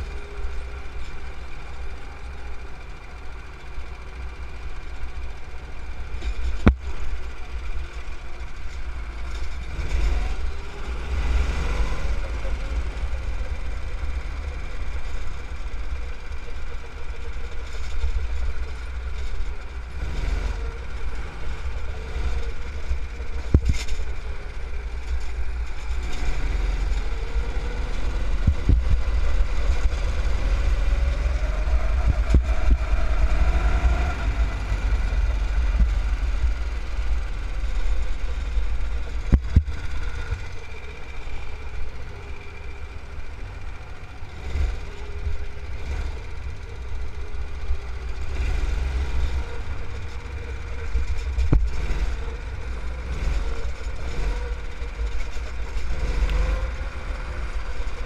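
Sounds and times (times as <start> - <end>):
go-kart engine accelerating: 0.0 - 58.0
heavy low rumble: 0.0 - 58.0.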